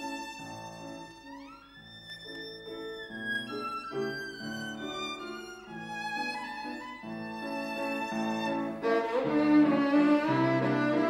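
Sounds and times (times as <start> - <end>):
piano accompaniment: 0.0 - 11.0
solo violin: 0.0 - 11.0.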